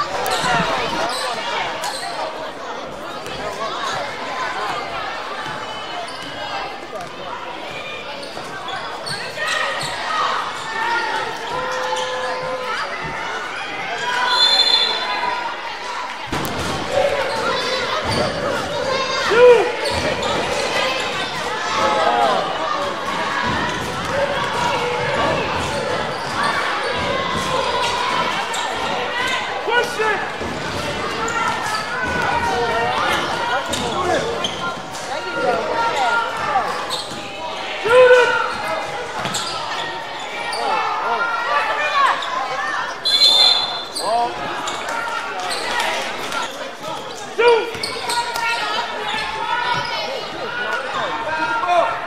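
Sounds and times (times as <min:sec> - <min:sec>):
people calling out: 0:08.6 - 0:52.0.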